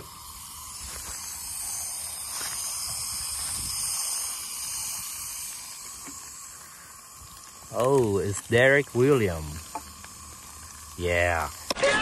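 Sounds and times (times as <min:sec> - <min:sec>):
aerosol foam can hissing: 0:00.0 - 0:12.0.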